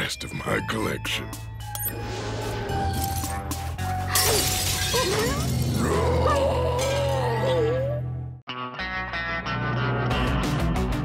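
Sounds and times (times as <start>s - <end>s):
glass shattering on floor: 4.1s - 5.7s.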